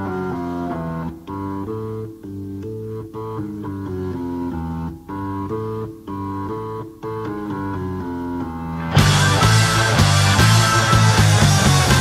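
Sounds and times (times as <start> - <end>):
bass guitar: 0.0 - 12.0
hard rock electric guitar riff: 6.3 - 12.0.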